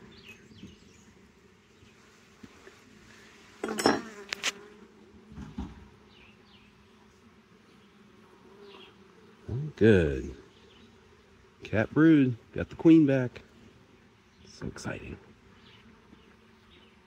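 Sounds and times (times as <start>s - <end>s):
honeybees buzzing: 0.0s - 17.0s
knocks and scrapes of wooden frames: 5.3s - 5.9s.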